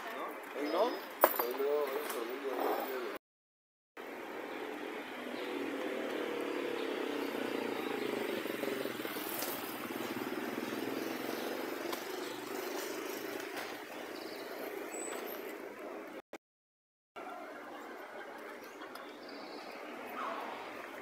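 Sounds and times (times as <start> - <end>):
street traffic: 0.0 - 3.2, 4.0 - 16.3, 17.2 - 21.0.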